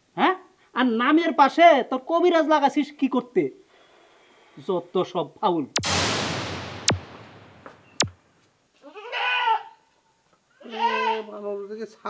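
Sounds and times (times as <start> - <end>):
sharp click: 5.8 - 8.2.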